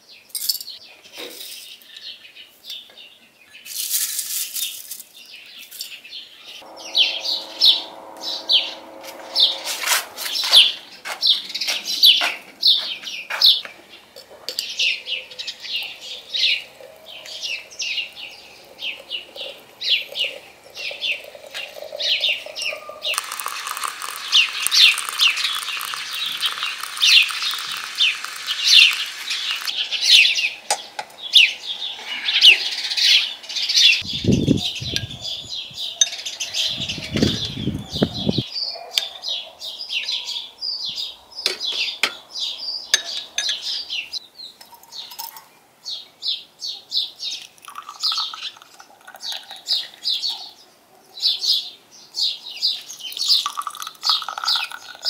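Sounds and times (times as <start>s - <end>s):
small birds chirping: 10.3s - 55.0s
water pouring into teapot: 14.2s - 29.8s, 47.5s - 50.3s, 52.9s - 55.0s.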